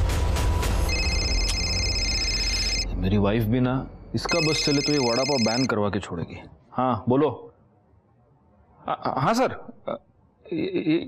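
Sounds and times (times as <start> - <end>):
phone ringing: 0.9 - 2.9, 4.2 - 5.7.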